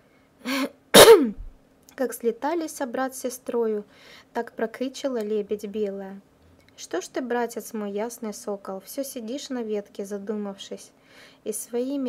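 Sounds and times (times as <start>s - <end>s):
woman sneezing: 0.4s - 1.5s.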